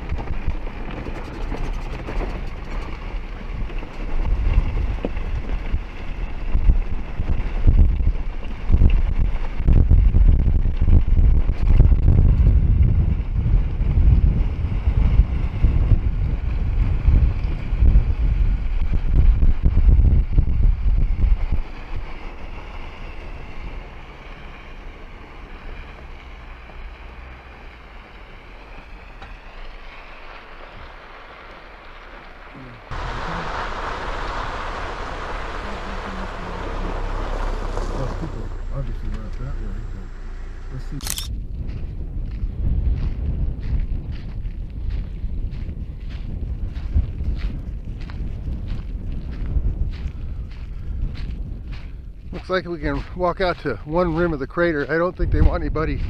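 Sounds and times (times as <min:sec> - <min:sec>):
truck driving on dirt track: 0:00.0 - 0:56.0
wind buffeting microphone: 0:00.0 - 0:56.0.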